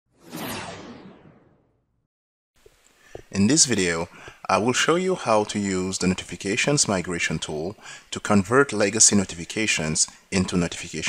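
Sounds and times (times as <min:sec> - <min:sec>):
whoosh sound effect: 0:00.1 - 0:01.8.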